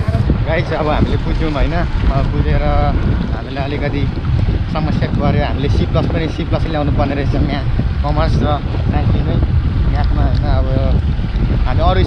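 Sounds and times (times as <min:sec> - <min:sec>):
man talking: 0:00.0 - 0:11.0, 0:11.6 - 0:12.0
wind buffeting microphone: 0:00.0 - 0:12.0.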